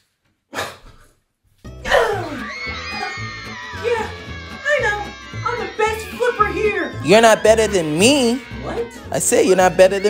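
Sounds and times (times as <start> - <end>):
background music: 1.6 - 10.0
person shouting: 1.8 - 10.0.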